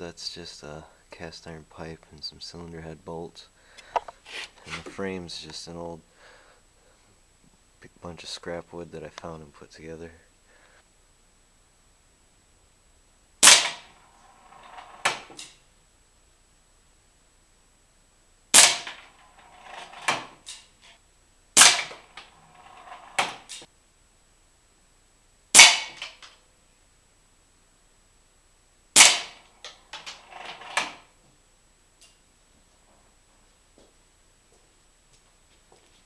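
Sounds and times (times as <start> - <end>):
air gun shots: 13.4 - 13.9, 18.5 - 19.0, 21.6 - 22.0, 25.6 - 26.1, 29.0 - 29.4
target board rattling: 18.6 - 20.6, 29.0 - 31.1.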